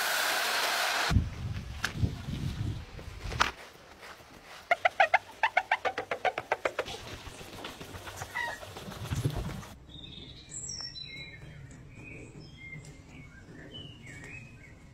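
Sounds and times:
small birds chirping: 0:09.9 - 0:14.9.

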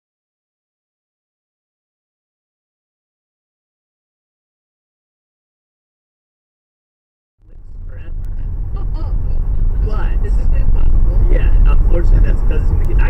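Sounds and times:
car engine and road rumble: 0:07.4 - 0:13.0
voices talking in a car: 0:07.5 - 0:13.0.

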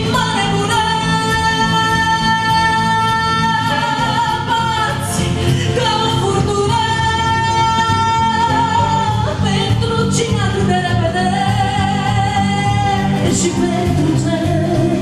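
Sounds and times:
live band accompaniment: 0:00.0 - 0:15.0
woman singing: 0:00.0 - 0:15.0.

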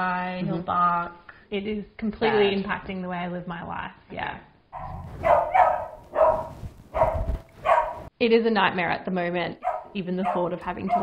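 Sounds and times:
dog barking: 0:04.8 - 0:08.1, 0:09.6 - 0:11.0.

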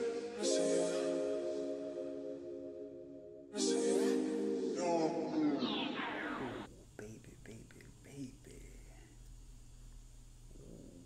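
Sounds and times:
background music: 0:00.0 - 0:06.7
man whispering softly: 0:06.6 - 0:09.3.

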